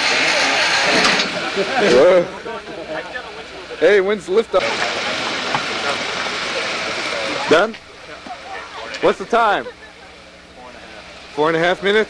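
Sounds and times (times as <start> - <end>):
voices murmuring: 0.0 - 12.0.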